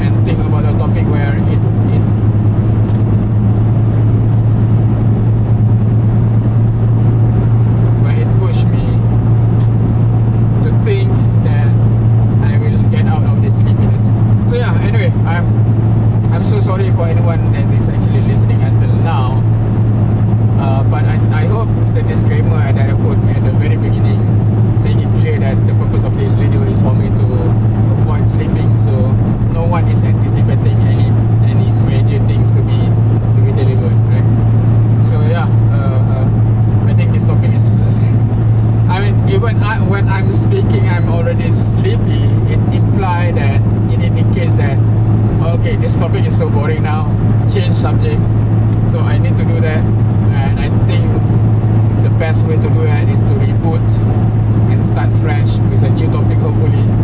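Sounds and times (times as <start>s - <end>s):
man talking: 0.0s - 2.1s, 7.9s - 9.1s, 10.6s - 15.6s, 16.2s - 19.6s, 20.5s - 34.4s, 35.0s - 38.2s, 38.9s - 57.0s
car engine drone: 0.0s - 57.0s
road noise: 0.0s - 57.0s.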